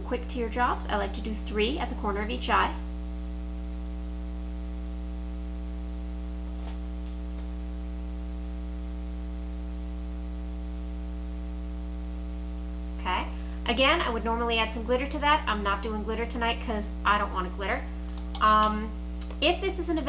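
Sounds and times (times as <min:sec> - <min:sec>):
electrical mains hum: 0:00.0 - 0:20.0.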